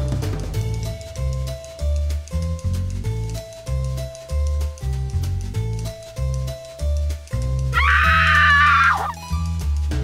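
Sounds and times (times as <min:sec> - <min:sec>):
background music with bass line: 0:00.0 - 0:10.0
woman screaming: 0:07.8 - 0:09.2.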